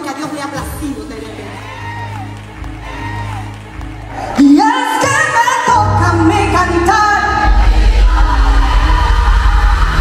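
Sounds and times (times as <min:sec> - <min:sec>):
heavy steady bass: 0:07.2 - 0:10.0.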